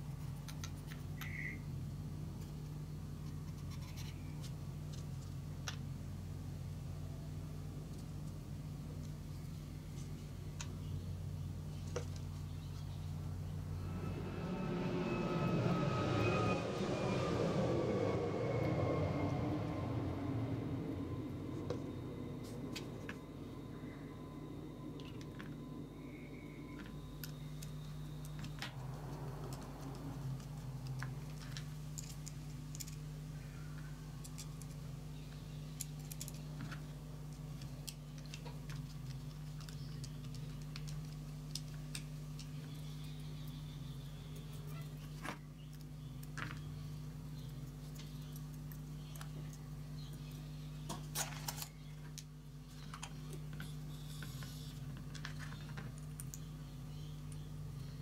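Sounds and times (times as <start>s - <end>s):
steady low hum: 0.0s - 58.0s
aircraft engine drone: 13.0s - 38.9s.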